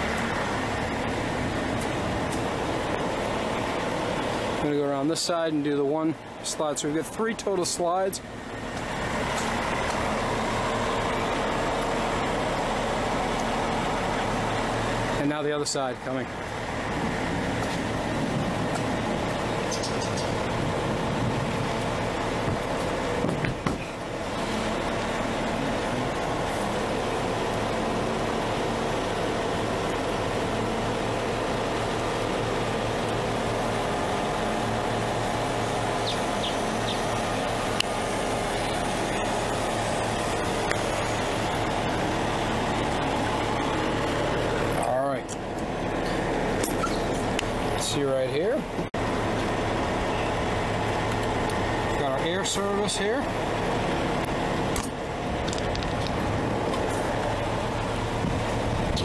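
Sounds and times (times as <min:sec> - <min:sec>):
mechanical hum: 0:16.2 - 0:48.0.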